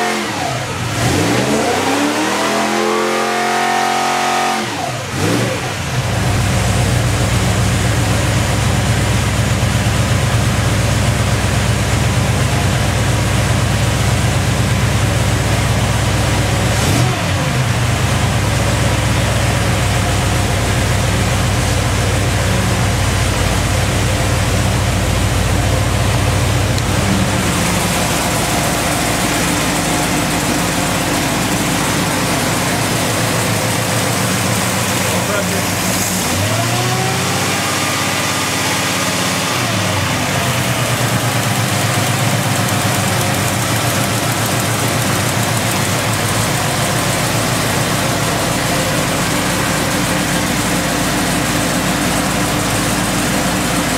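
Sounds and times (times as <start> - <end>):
engine idling and revving: 0.0 - 53.9.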